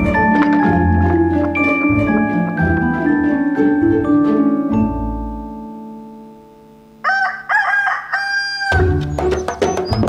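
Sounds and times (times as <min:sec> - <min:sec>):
rooster crowing: 0:07.0 - 0:09.0
rhythmic percussion music: 0:08.8 - 0:10.0.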